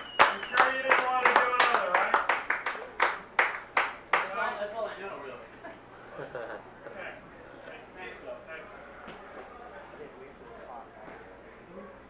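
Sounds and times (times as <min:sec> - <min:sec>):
voices: 0:00.0 - 0:03.2, 0:04.2 - 0:12.0
hand claps: 0:00.0 - 0:04.4.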